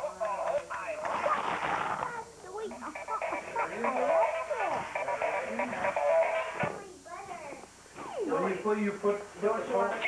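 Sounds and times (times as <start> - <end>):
robotic toy frog electronic voice: 2.0 - 6.6.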